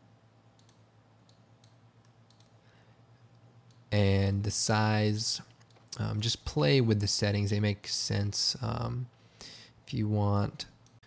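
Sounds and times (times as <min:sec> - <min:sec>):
low steady background noise: 0:00.0 - 0:11.0
computer mouse clicks: 0:00.6 - 0:02.6, 0:05.4 - 0:06.0.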